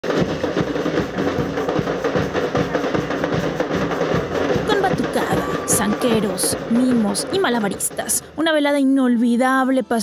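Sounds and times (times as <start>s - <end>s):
samba percussion drumming: 0.0s - 8.8s.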